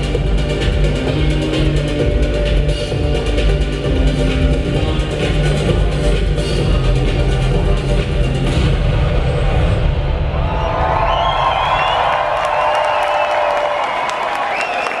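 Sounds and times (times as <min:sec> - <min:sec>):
live band music with heavy bass: 0:00.0 - 0:09.2
crowd cheering and screaming: 0:10.1 - 0:15.0
people clapping: 0:11.0 - 0:15.0.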